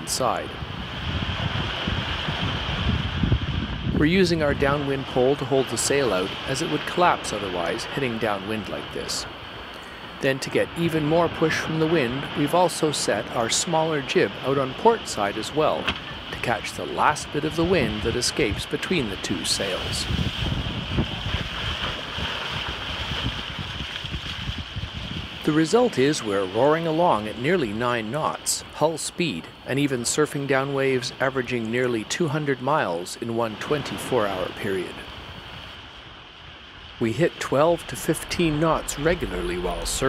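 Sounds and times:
wind buffeting microphone: 0.0 - 12.6, 13.4 - 26.5, 33.6 - 40.0
water rushing along boat hull: 0.0 - 40.0.

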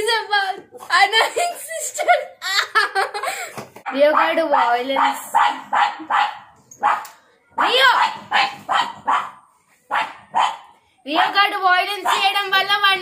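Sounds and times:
dog barking: 3.9 - 12.5.

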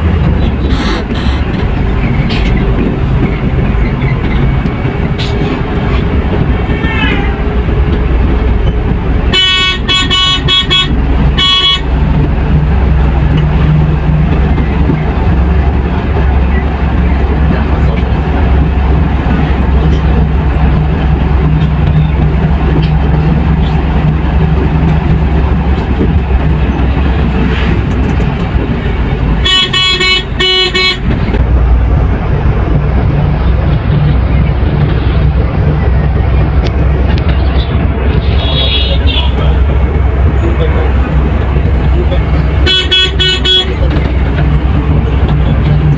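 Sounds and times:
bus diesel engine drone: 0.0 - 45.9
horn tooting: 9.3 - 12.0, 29.4 - 31.2, 38.2 - 39.6, 42.6 - 43.9.

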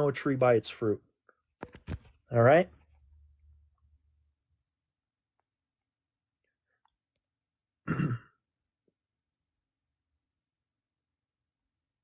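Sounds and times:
man clearing his throat: 7.8 - 8.4.

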